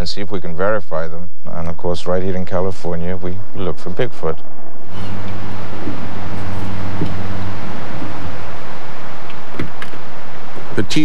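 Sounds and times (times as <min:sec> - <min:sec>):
steady hiss: 0:00.0 - 0:11.0
car engine idling: 0:04.4 - 0:11.0.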